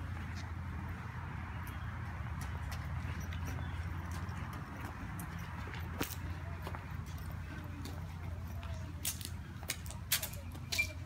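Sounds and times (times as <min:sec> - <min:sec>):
toddler footsteps on brick: 0:00.0 - 0:11.0.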